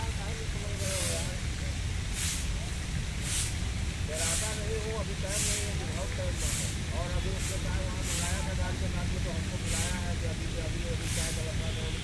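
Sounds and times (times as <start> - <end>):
faint voices talking: 0.0 - 3.0, 4.0 - 12.0
short hissing bursts: 0.6 - 12.0.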